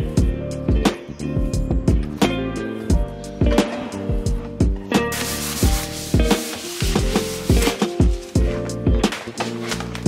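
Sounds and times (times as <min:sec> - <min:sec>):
background music with a beat: 0:00.0 - 0:10.0
tissue rubbing on a drawer: 0:05.1 - 0:08.5.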